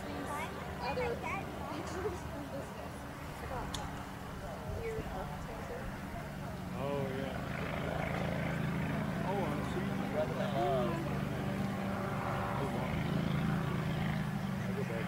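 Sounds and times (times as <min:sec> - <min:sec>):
distant aircraft engine droning: 0:00.0 - 0:15.0.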